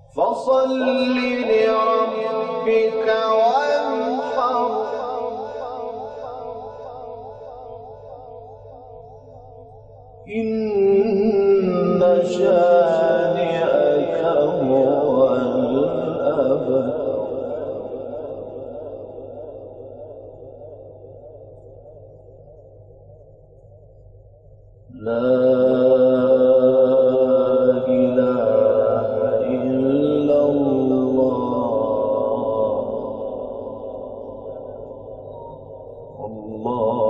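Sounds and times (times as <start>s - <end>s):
man reciting in melodic style: 0.0s - 8.5s, 10.2s - 21.1s, 24.9s - 37.0s.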